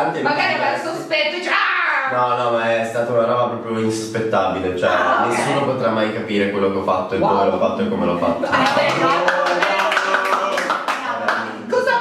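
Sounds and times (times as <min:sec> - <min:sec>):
people clapping: 0:08.4 - 0:12.0.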